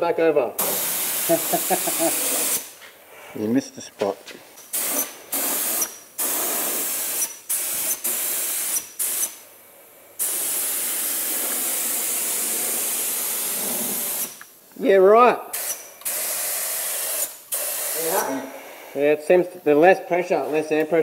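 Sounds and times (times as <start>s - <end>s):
paint spray gun hissing: 0.6s - 2.8s, 4.6s - 9.4s, 10.2s - 14.4s, 15.5s - 18.2s.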